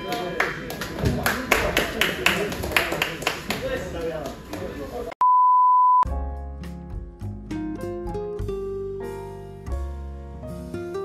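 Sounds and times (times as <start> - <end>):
loud electronic beep: 5.2 - 6.1
music with plucked notes: 6.1 - 11.0.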